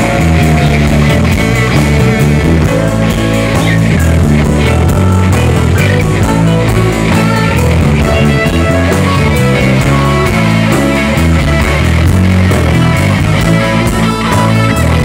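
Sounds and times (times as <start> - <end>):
bass: 0.0 - 15.0
electric guitars: 0.0 - 15.0
keyboards: 0.0 - 15.0
steady drum beat: 0.0 - 15.0.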